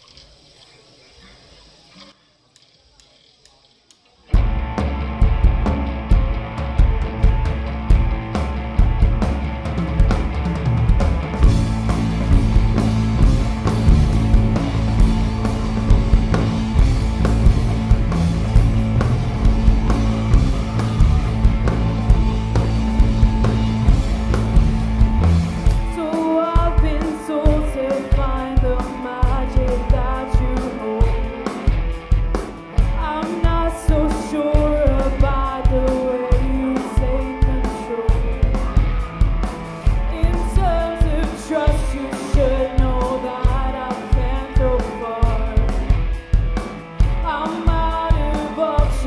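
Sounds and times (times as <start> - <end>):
live band playing: 4.3 - 49.0
person singing: 25.7 - 31.9, 32.8 - 38.9, 39.8 - 46.0, 47.0 - 49.0.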